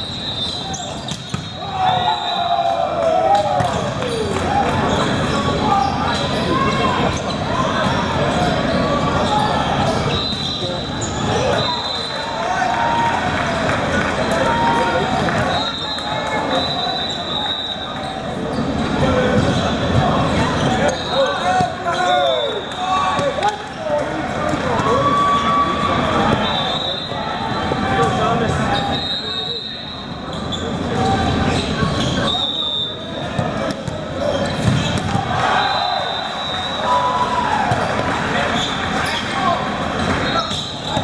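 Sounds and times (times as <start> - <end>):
sneaker squeaks on court floor: 0.0 - 2.1, 3.6 - 12.2, 16.5 - 23.4, 26.3 - 35.2, 37.7 - 39.4, 40.0 - 41.0
voices echoing in hall: 0.0 - 41.0
ball being hit and bouncing: 1.1 - 1.6, 33.4 - 34.0, 34.6 - 35.3.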